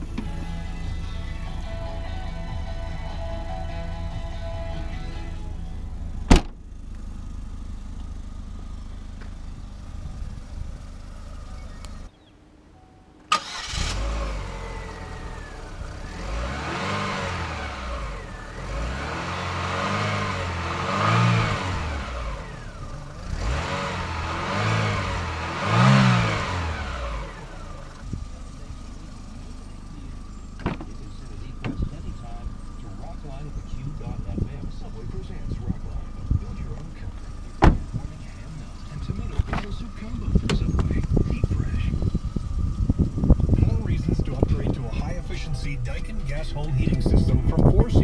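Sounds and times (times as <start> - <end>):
car engine revving and idling: 0.0 - 12.2, 13.2 - 48.0
hatch shutting thump: 6.2 - 6.6, 30.6 - 31.0, 37.6 - 38.0.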